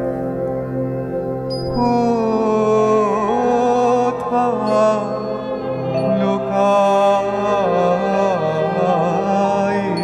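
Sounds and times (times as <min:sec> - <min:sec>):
man singing slow melody: 0:01.5 - 0:10.0.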